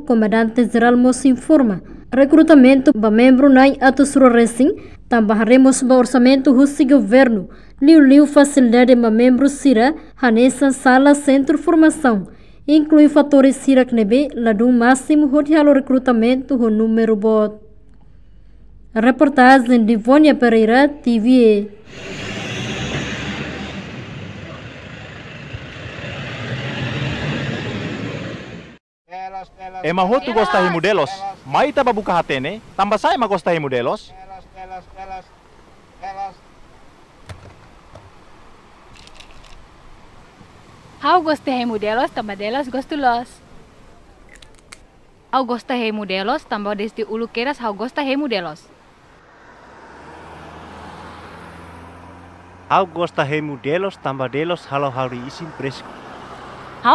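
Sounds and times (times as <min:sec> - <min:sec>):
outdoor traffic noise: 0:00.0 - 0:56.9
road noise: 0:00.0 - 0:56.9
car engine and tyres: 0:21.8 - 0:28.8, 0:34.5 - 0:41.0, 0:48.7 - 0:56.9.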